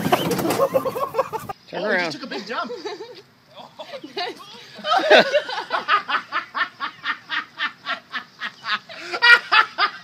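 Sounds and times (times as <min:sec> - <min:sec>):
person laughing hard: 0:00.0 - 0:01.5, 0:03.8 - 0:10.0.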